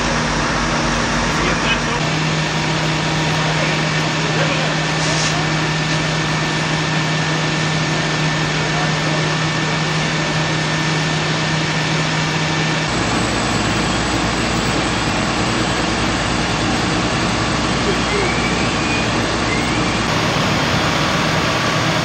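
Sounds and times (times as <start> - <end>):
deep steady rumble: 0.0 - 5.0, 11.7 - 22.0
fire engine engine drone: 0.0 - 22.0.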